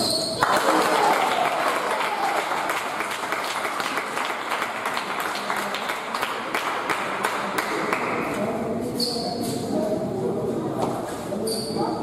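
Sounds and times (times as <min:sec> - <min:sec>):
spectators applauding: 0:00.4 - 0:08.1.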